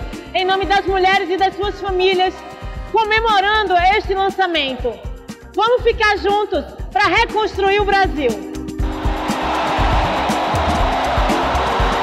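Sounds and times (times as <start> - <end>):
music with low beat: 8.4 - 12.0
large crowd cheering: 8.8 - 12.0.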